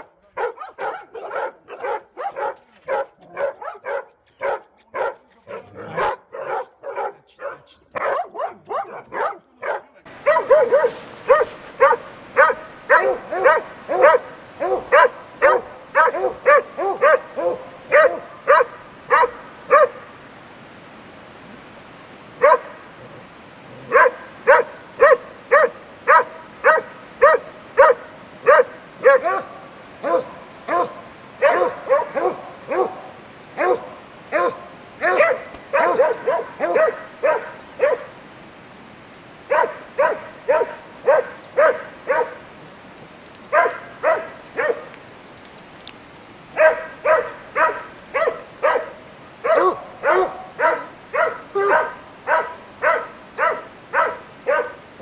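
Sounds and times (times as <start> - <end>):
dog barking loudly: 0.0 - 20.1, 22.4 - 22.8, 23.8 - 38.1, 39.5 - 42.4, 43.5 - 44.9, 46.6 - 54.8
kennelled dog barking: 0.0 - 20.1, 22.4 - 22.8, 23.8 - 38.2, 39.5 - 42.4, 43.5 - 45.0, 46.6 - 54.8.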